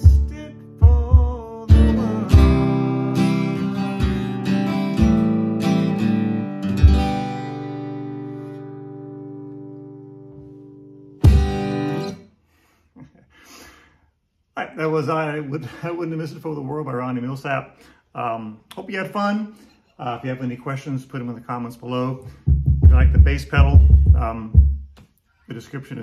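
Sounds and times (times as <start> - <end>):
acoustic guitar strumming: 0.0 - 12.2
stomp box kick: 11.2 - 11.6, 22.4 - 24.9.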